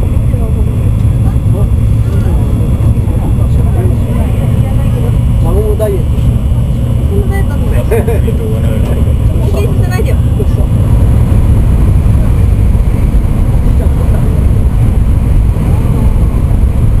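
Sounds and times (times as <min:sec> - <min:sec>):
passengers' voices: 0:00.0 - 0:17.0
train interior rumble: 0:00.0 - 0:17.0.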